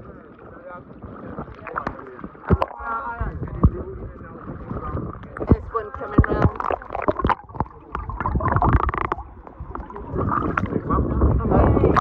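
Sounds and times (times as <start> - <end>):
muffled underwater sound: 0.0 - 12.0
sea water sloshing and splashing: 0.0 - 12.0
indistinct voices: 1.3 - 12.0.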